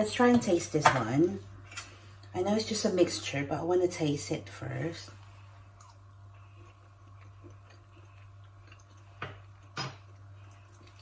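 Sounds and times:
soft chewing: 5.2 - 11.0.

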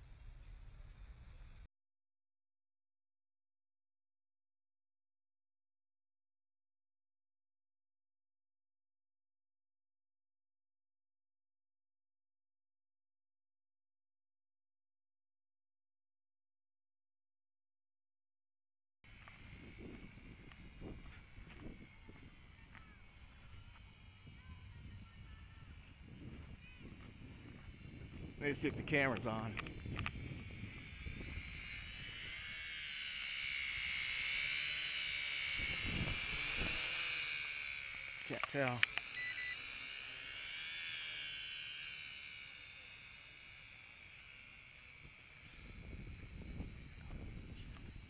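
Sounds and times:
wind rumbling on microphone: 19.1 - 32.5, 35.6 - 37.0, 45.4 - 48.0
drone motors whining: 19.1 - 48.0.

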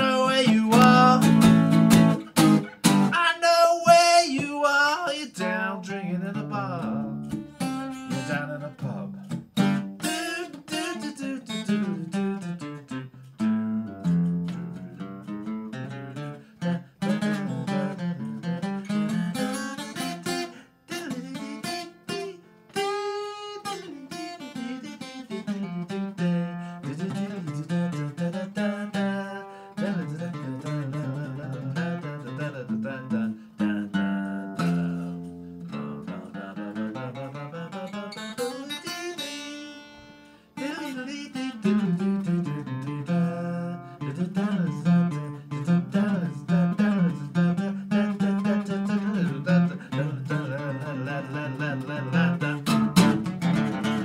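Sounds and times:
acoustic guitar playing: 0.0 - 54.0.

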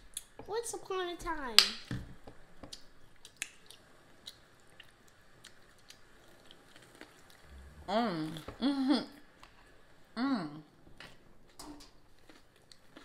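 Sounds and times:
chewing and biting food: 2.7 - 7.5, 12.1 - 13.0.

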